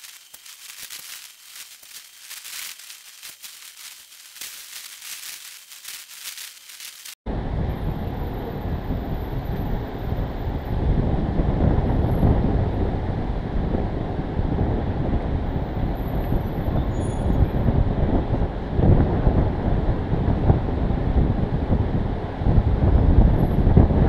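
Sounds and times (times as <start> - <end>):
car engine and tyres: 7.3 - 24.0
wind buffeting microphone: 7.3 - 24.0.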